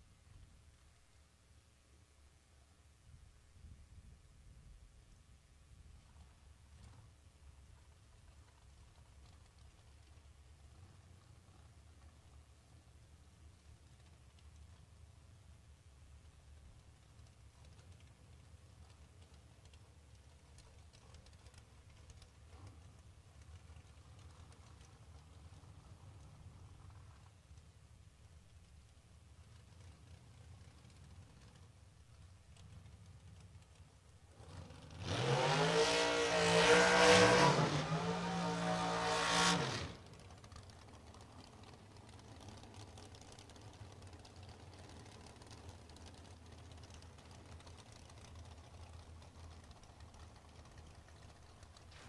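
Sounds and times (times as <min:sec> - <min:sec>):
drag racing car engine accelerating: 0:32.6 - 0:52.0.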